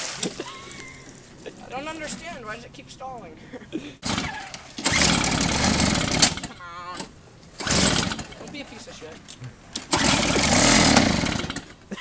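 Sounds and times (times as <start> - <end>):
snow blower engine starting: 4.0 - 8.8, 9.7 - 12.0.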